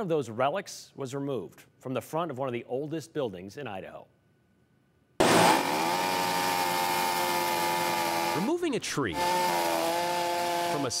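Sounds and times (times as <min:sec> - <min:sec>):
chainsaw running at high speed: 0:05.2 - 0:11.0.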